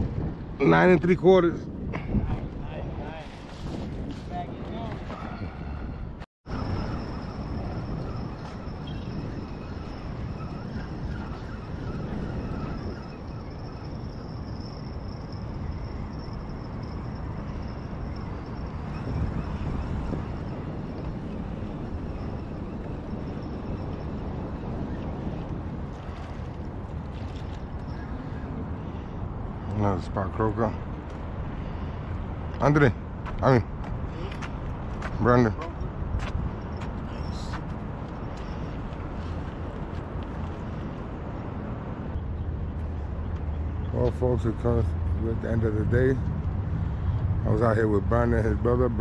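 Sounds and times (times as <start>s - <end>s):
wind buffeting microphone: 0.0s - 49.0s
faint high whine: 6.5s - 28.4s.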